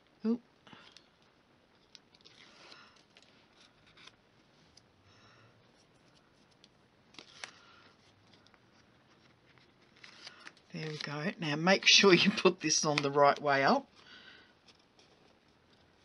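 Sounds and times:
cardstock rustling and scraping: 5.7s - 11.4s.

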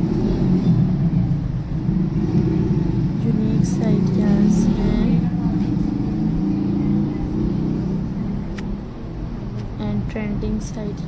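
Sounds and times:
steady low rumble: 0.0s - 11.0s
sharp click: 8.5s - 8.7s.

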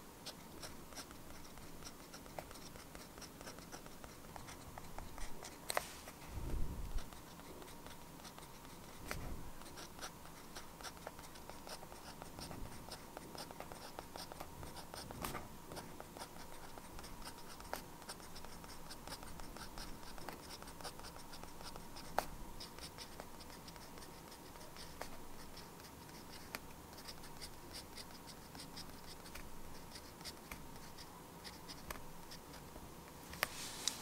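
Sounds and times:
pen nib scratching paper: 0.2s - 6.0s, 6.9s - 32.7s.

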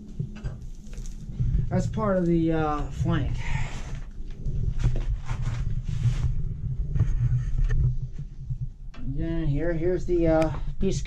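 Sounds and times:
microphone handling rumble: 0.0s - 11.0s.

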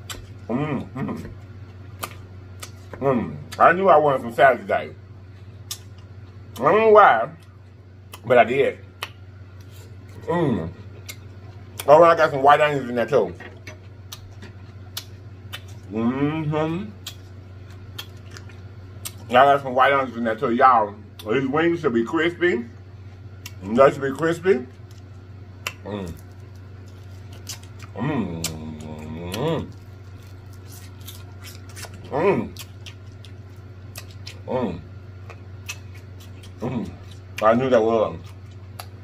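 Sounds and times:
steady low hum: 0.0s - 39.0s
chewing salad crunches: 17.0s - 19.6s, 23.4s - 39.0s.

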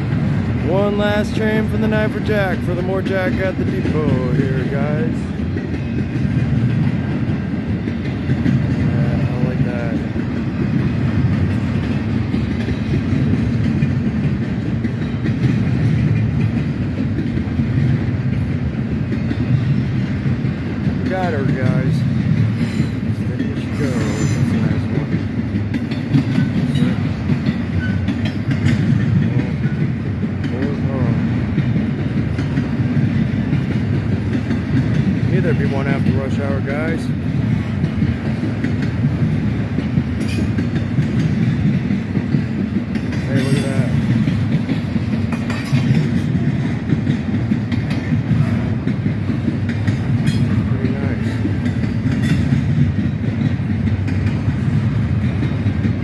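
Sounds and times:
freight train rumbling and clattering: 0.0s - 56.0s.

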